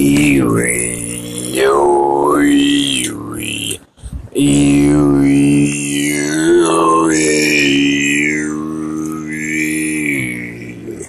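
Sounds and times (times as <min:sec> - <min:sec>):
man singing a long note: 0:00.0 - 0:03.8, 0:04.4 - 0:11.0.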